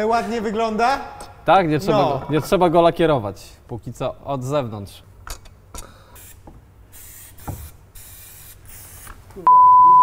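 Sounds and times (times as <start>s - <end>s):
aerosol spray can hissing: 6.2s - 9.2s
censor beep: 9.4s - 10.0s.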